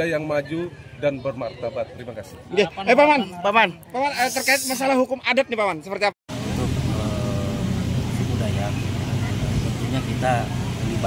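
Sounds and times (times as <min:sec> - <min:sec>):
engine humming: 0:06.3 - 0:11.0.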